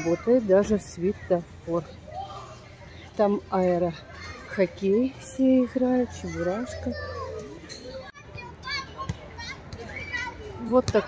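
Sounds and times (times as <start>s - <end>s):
children calling out: 0.0s - 0.5s, 5.8s - 10.7s.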